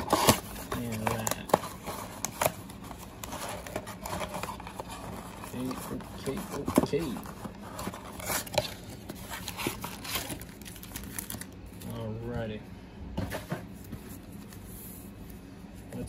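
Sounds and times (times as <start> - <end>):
foil card packs crinkling: 0.0 - 12.2.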